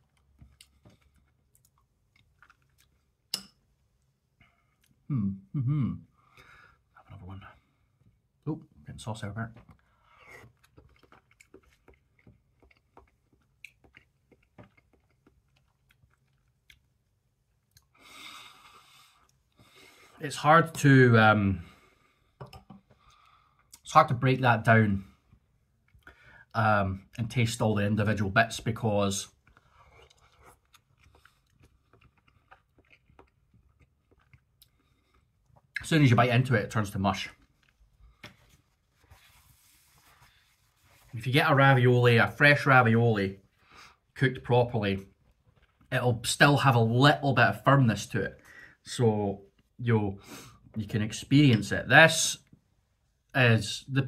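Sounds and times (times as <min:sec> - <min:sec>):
person chewing with wet clicks: 0:00.0 - 0:03.6, 0:09.7 - 0:18.0, 0:29.3 - 0:35.8
paper tissue rustling: 0:38.4 - 0:41.2.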